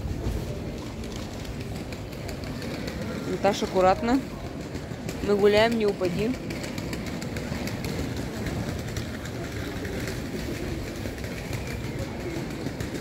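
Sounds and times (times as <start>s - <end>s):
city street low rumble: 0.0s - 13.0s.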